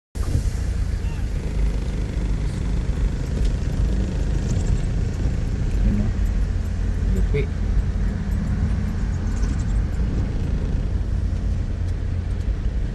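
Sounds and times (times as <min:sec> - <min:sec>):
car driving on wet road: 0:00.2 - 0:12.9.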